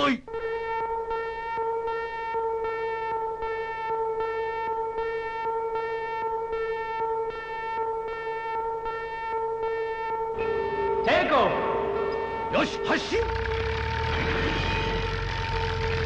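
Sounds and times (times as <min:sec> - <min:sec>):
pulsing electronic siren: 0:00.0 - 0:16.0.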